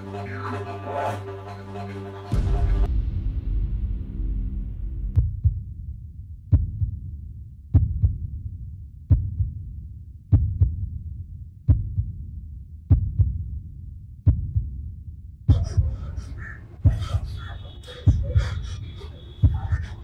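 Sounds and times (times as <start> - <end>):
heartbeat thumps: 2.3 - 5.8, 6.5 - 7.1, 7.7 - 8.4, 9.1 - 9.6, 10.3 - 10.9, 11.7 - 12.2, 12.9 - 13.5, 14.3 - 14.8, 15.5 - 20.0
low rumble: 2.3 - 12.2.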